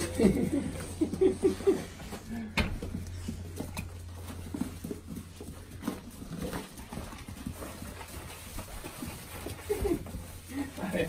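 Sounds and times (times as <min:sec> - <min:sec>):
animals moving about: 0:00.0 - 0:11.0
steady low hum: 0:00.0 - 0:11.0.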